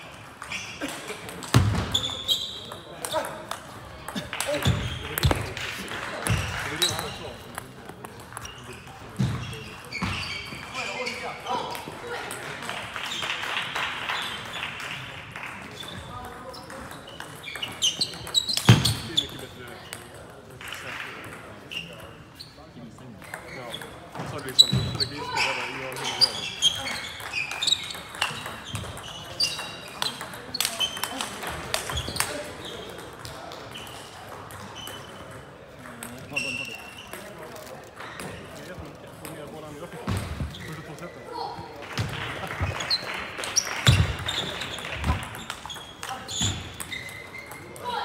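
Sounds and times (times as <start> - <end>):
table tennis balls clicking: 0.2 - 9.0, 25.9 - 39.6, 42.0 - 47.9
shoe squeaks on floor: 0.4 - 3.4, 6.3 - 7.6, 8.3 - 11.7, 15.8 - 19.5, 21.7 - 33.0, 33.7 - 35.4, 36.2 - 38.9, 40.1 - 41.5, 42.4 - 48.0.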